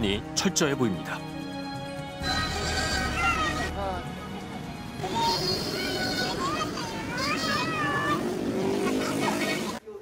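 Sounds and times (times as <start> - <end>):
street traffic: 1.2 - 10.0.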